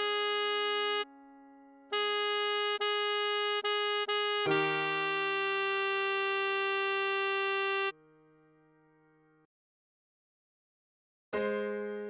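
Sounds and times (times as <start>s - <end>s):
electronic saxophone held note: 1.9s - 7.9s.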